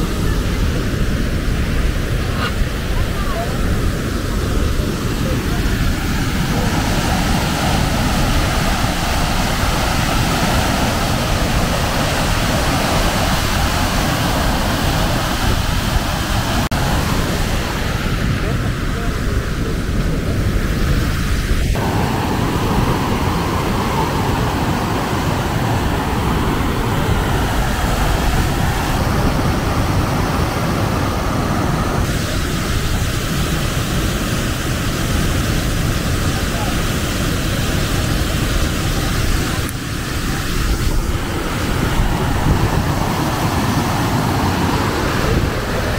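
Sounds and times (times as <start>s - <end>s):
waterfall rushing: 0.0s - 45.9s
wind on microphone: 0.0s - 45.9s.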